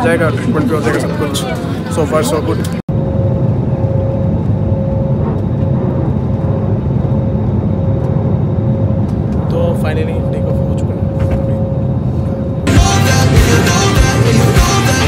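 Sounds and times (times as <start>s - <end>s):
airliner engine and airflow drone: 0.0s - 15.0s
constant mid-pitched hum: 0.0s - 15.0s.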